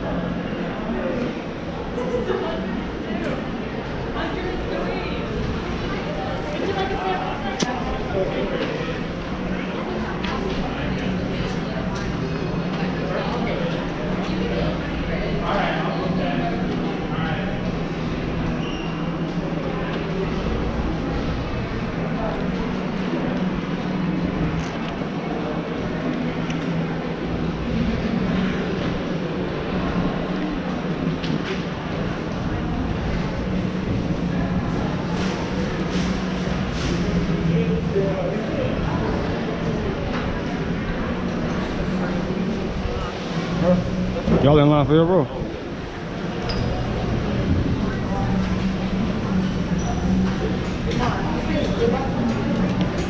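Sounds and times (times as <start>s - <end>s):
murmur of voices: 0.0s - 53.0s
steady low hum: 0.0s - 53.0s.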